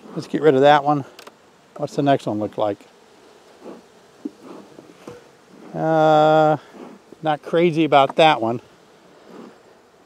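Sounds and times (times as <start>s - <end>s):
honeybees buzzing: 0.0s - 10.0s
wooden hive frame handling: 0.0s - 10.0s.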